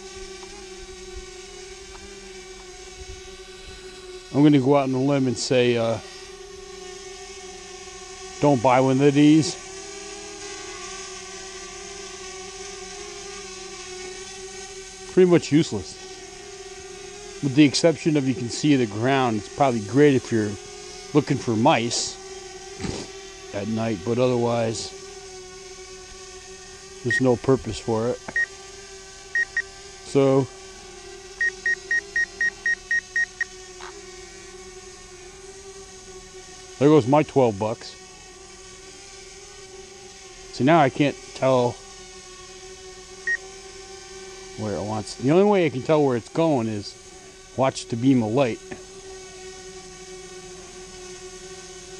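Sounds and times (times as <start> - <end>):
drone propellers buzzing whine: 0.0 - 51.9
steady hum: 0.0 - 51.9
high electronic warning beeps: 29.4 - 29.7, 31.4 - 33.5.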